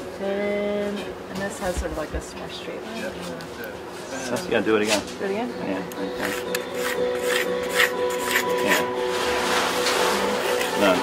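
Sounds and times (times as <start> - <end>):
pencil scratching on plywood: 6.2 - 8.8.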